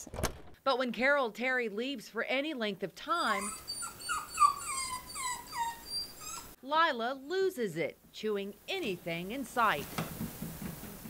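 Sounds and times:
dog whining: 3.3s - 6.6s.

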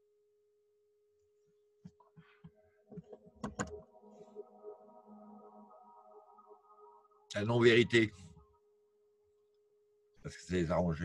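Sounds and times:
faint steady tone: 2.6s - 10.2s.

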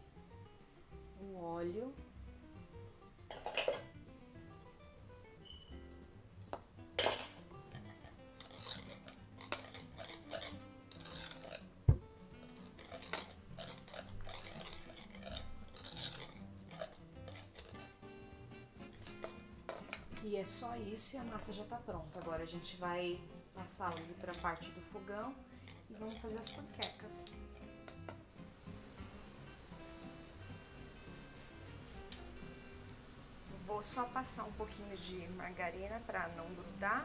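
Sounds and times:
background music: 0.0s - 37.0s
wire whisk beating in a bowl: 8.4s - 11.6s, 12.7s - 17.8s, 23.6s - 24.5s, 25.9s - 27.0s.

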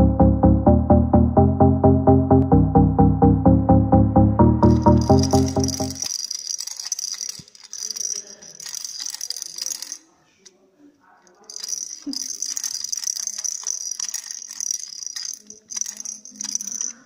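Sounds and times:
plastic ball rattle shaken: 4.6s - 10.1s, 11.2s - 17.0s.

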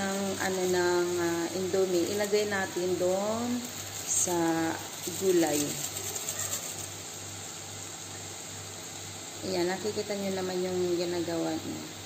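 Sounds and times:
gas stove hissing: 0.0s - 12.0s.

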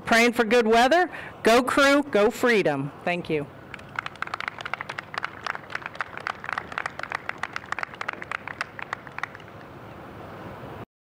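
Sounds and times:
small group applauding: 3.7s - 9.8s.

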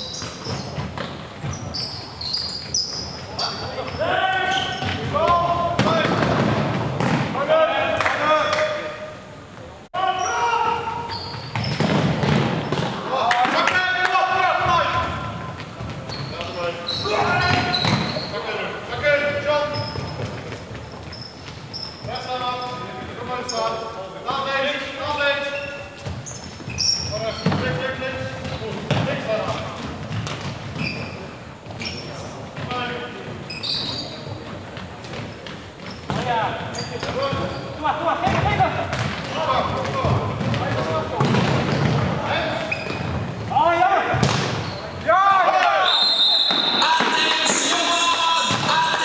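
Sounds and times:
ball bouncing on wooden floor: 44.1s - 44.6s
players shouting: 45.0s - 49.0s.

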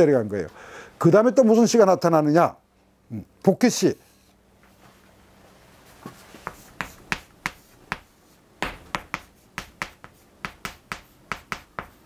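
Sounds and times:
chalk tapping on blackboard: 6.1s - 12.0s.

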